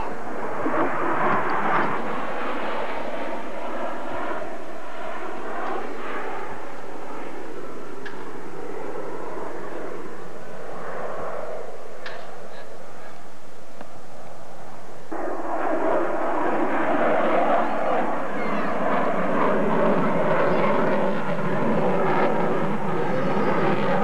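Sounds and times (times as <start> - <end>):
jet aircraft flying overhead: 0.0 - 24.0.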